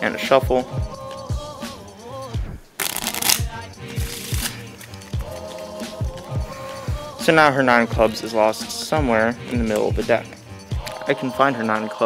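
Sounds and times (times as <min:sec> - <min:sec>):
background music with steady beat: 0:00.0 - 0:12.0
playing cards being shuffled: 0:02.8 - 0:05.0.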